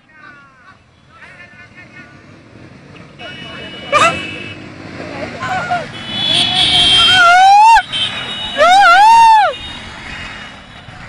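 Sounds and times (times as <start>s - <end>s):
distant shouting voices: 0.0s - 9.6s
motorcycle engines running: 0.1s - 11.0s.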